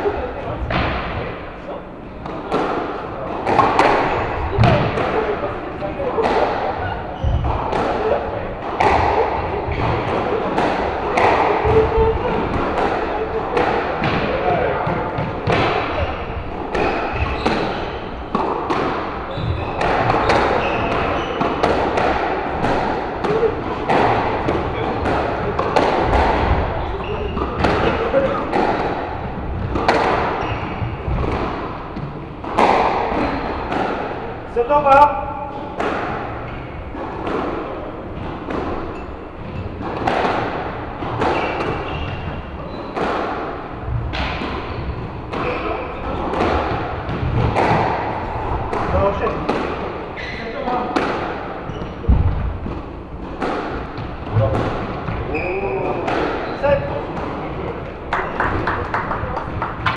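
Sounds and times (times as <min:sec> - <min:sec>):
squash ball hitting rackets and walls: 0:00.0 - 0:01.4, 0:02.2 - 0:59.9.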